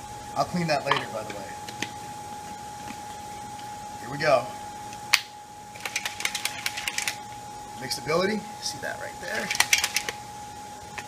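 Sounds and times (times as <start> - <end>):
powder rattling in shaker bottle: 9.4 - 10.1.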